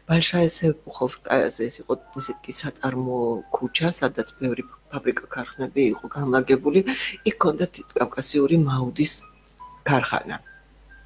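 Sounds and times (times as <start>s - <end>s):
person talking: 0.0s - 10.5s.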